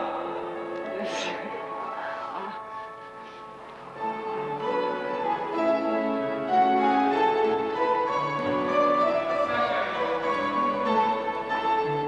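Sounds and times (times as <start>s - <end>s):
slow piano melody: 0.0s - 12.0s.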